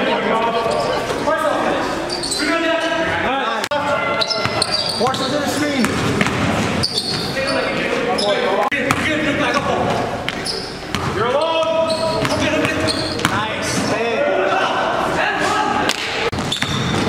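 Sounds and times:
players calling out: 0:00.0 - 0:17.0
basketball bouncing on gym floor: 0:04.4 - 0:07.4, 0:08.8 - 0:13.4, 0:16.3 - 0:17.0.

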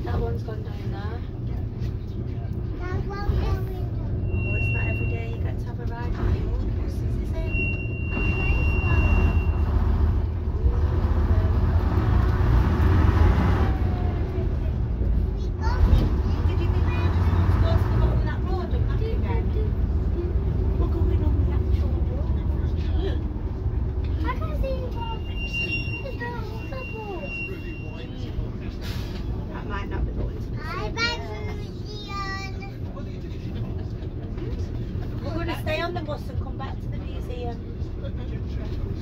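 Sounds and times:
diesel engine drone: 0:00.0 - 0:39.0.

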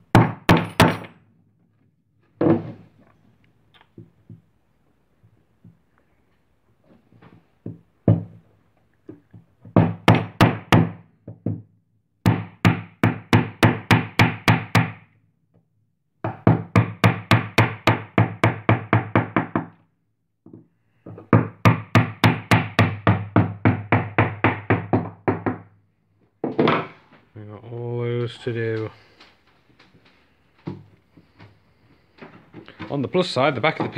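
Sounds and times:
hammer tapping wood chisel: 0:20.5 - 0:25.7.

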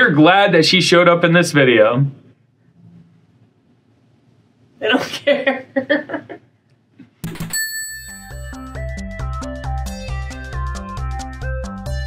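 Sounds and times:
person laughing: 0:05.0 - 0:06.4
ringing bell-like chime: 0:07.5 - 0:09.0.

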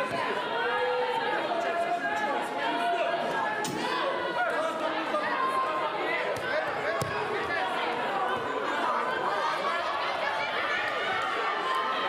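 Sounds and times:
many voices chattering: 0:00.0 - 0:12.0.

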